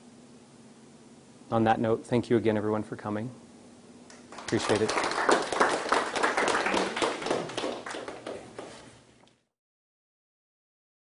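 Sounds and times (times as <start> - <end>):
audience applauding: 4.3 - 8.8.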